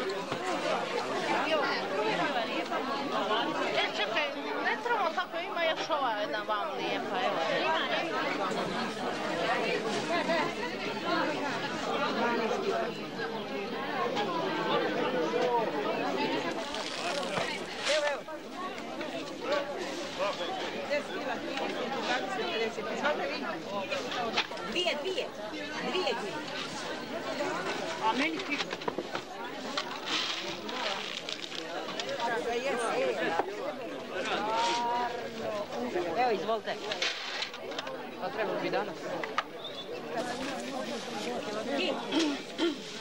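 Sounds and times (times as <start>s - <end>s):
market chatter: 0.0s - 43.0s
overlapping voices talking: 0.0s - 43.0s.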